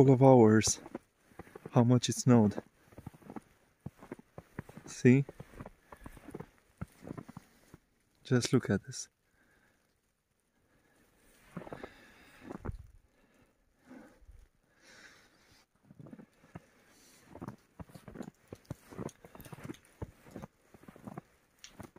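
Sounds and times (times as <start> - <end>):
footsteps in snow: 0.0 - 7.9, 11.2 - 12.9, 15.8 - 21.9.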